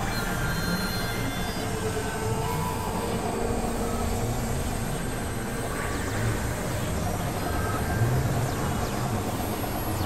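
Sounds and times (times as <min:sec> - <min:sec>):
layered drones and noise: 0:00.0 - 0:10.0.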